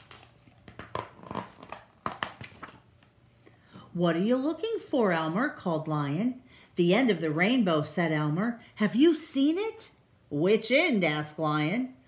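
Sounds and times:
book pages turning: 0:00.0 - 0:03.2.

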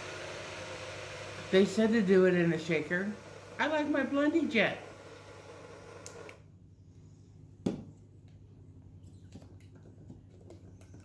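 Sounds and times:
low room hum: 0:00.4 - 0:11.0.

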